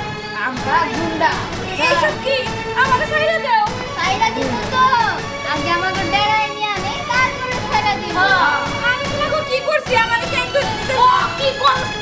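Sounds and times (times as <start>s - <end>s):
soft background music: 0.0s - 12.0s
people talking: 0.5s - 12.0s.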